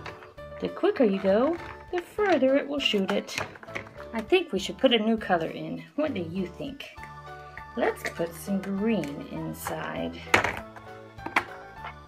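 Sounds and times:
background music: 0:00.0 - 0:12.0
plastic toy knocks: 0:10.3 - 0:11.6.

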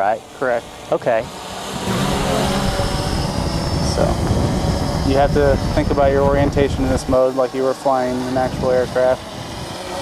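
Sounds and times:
quadcopter motors whining: 0:00.0 - 0:10.0
wind on microphone: 0:01.7 - 0:10.0.

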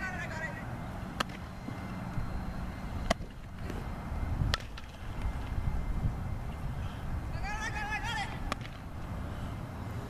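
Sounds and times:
steady low rumble: 0:00.0 - 0:10.0
bat striking softball: 0:01.2 - 0:01.4, 0:04.5 - 0:05.0, 0:08.3 - 0:08.9.

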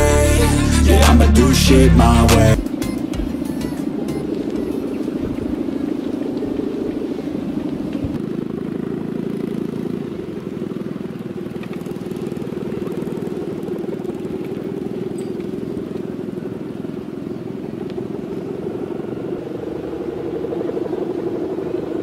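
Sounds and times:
kite hummer buzzing drone: 0:00.0 - 0:22.0.

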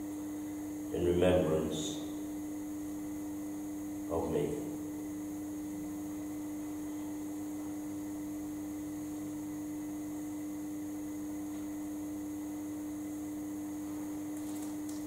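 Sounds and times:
steady electrical hum: 0:00.0 - 0:15.0.

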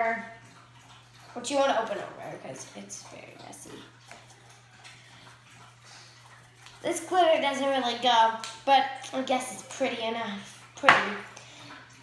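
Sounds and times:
girl speaking: 0:06.8 - 0:11.3.

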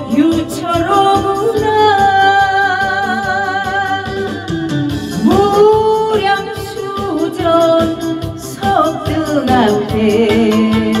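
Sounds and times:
instrumental backing: 0:00.0 - 0:11.0.

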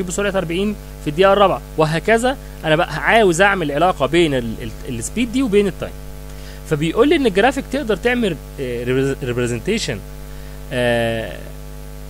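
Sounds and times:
electrical mains hum: 0:00.0 - 0:12.0
man holding a vowel: 0:10.7 - 0:11.5.

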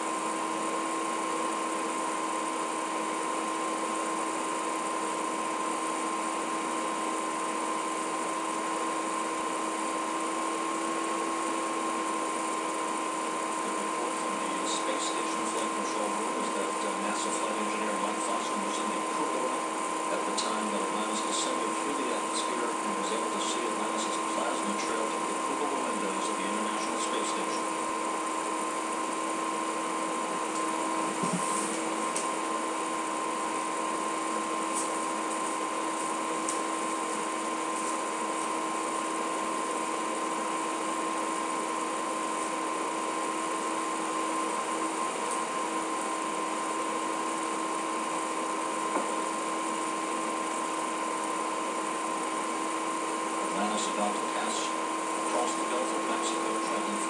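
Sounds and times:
constant electrical tones: 0:00.0 - 0:57.0
audio feed hiss: 0:13.6 - 0:27.8, 0:53.2 - 0:57.0.

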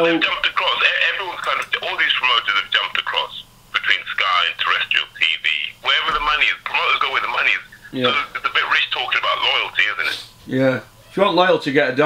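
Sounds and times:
man talking over telephone: 0:00.0 - 0:12.0.

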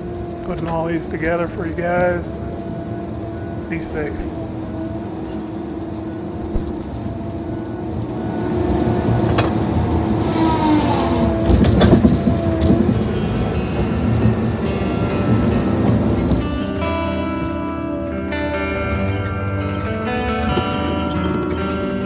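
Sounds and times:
machine engine and saw hum: 0:00.0 - 0:16.9
music: 0:00.0 - 0:22.0
saw head squealing: 0:10.0 - 0:11.5.

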